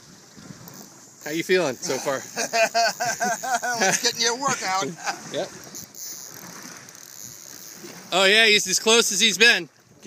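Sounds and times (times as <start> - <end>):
fishing reel whirring: 0.5 - 9.4.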